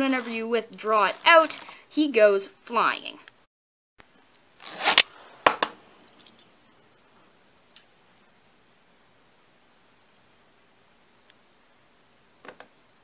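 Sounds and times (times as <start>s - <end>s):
plastic rip cord zipping: 1.0s - 1.8s, 4.6s - 5.1s.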